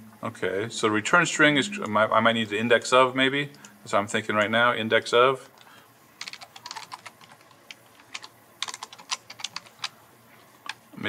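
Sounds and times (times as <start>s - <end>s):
computer keyboard typing: 6.2s - 9.9s.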